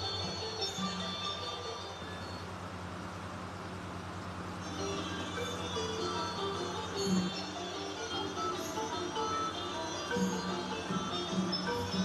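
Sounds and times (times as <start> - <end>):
background music: 0.0 - 2.8, 4.6 - 12.0
low hum with hiss: 0.0 - 12.0.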